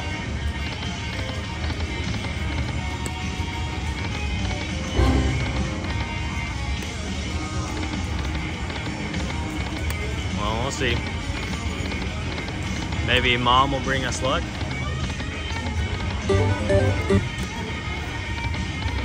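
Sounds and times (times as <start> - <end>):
slot machine spin music: 5.0 - 6.8, 16.3 - 17.7
casino floor din: 16.3 - 17.4.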